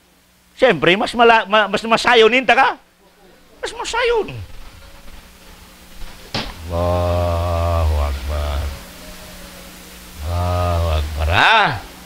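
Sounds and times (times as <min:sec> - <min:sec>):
man holding low sung note: 0:06.5 - 0:12.0.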